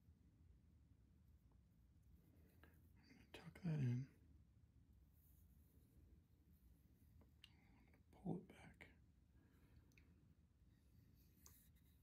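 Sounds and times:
person whispering: 0:02.9 - 0:04.2, 0:07.4 - 0:09.0.

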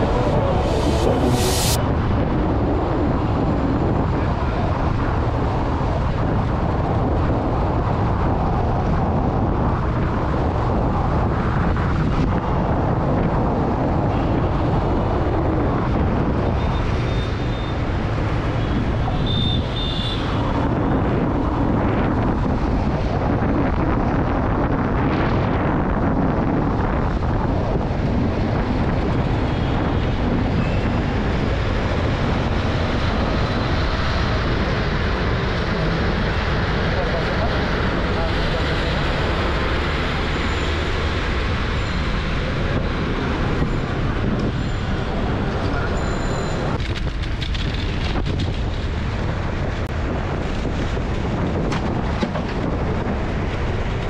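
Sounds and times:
faint high notes: 0:00.0 - 0:01.8
bus engine and road noise: 0:00.0 - 0:54.0
wind on microphone: 0:00.0 - 0:54.0.

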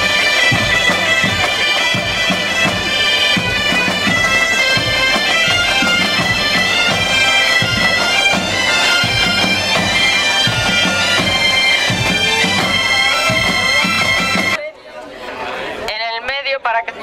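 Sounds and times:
bagpipe music: 0:00.0 - 0:14.6.

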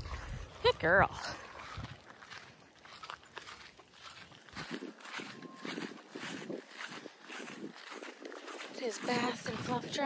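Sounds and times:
footsteps on grass: 0:00.0 - 0:10.0
faint short beep: 0:05.2 - 0:06.0.

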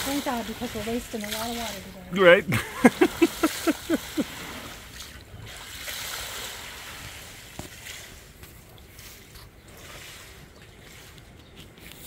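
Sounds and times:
water sloshing and trickling: 0:00.0 - 0:12.0.

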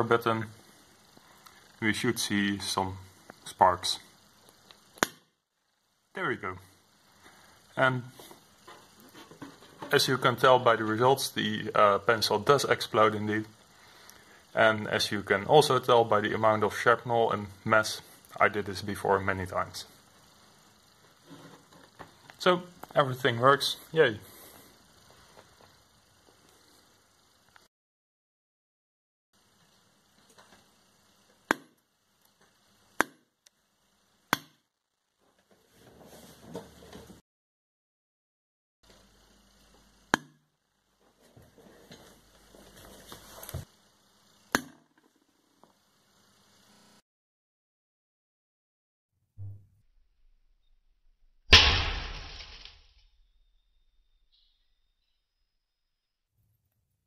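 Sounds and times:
pencil lead exploding bang: 0:51.5 - 0:52.8
sharp electrical snaps: 0:51.5 - 0:53.0.

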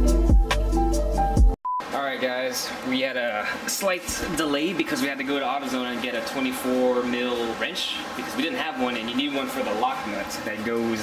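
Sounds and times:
man talking: 0:01.8 - 0:11.0.

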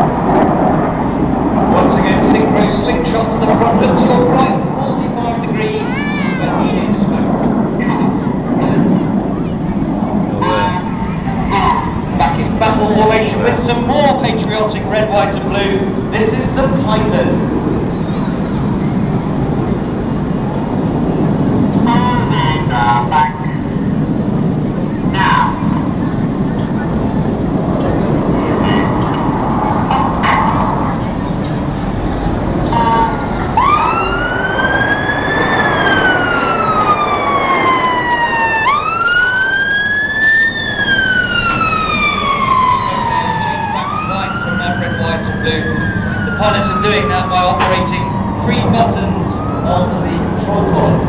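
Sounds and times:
jets roaring overhead: 0:00.0 - 0:51.0
steady outdoor noise: 0:00.0 - 0:51.0
public address commentary: 0:01.7 - 0:17.6, 0:21.8 - 0:23.8, 0:25.0 - 0:27.0, 0:27.9 - 0:31.6, 0:32.5 - 0:33.6, 0:42.9 - 0:51.0.

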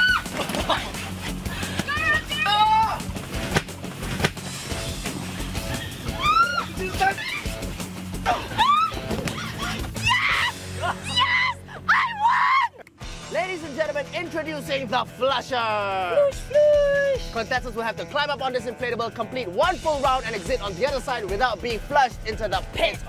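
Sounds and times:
people shrieking and shouting: 0:00.0 - 0:03.2, 0:05.7 - 0:12.9, 0:16.2 - 0:17.3
background music: 0:00.0 - 0:23.0.

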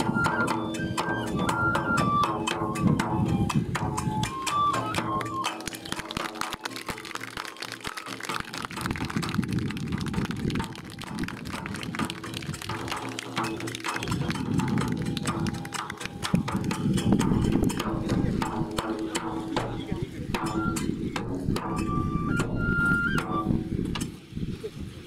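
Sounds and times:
audience applauding: 0:05.0 - 0:16.8
crowd murmur: 0:05.0 - 0:20.7.

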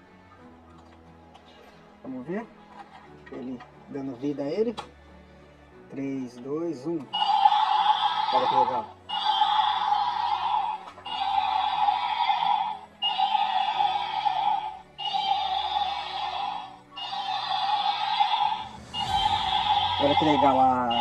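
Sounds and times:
toy electronic sound effect: 0:07.2 - 0:21.0.

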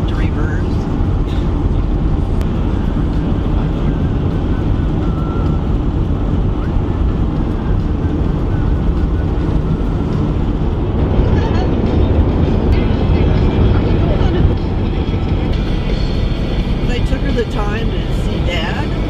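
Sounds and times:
car cabin road and engine noise: 0:00.0 - 0:19.0.

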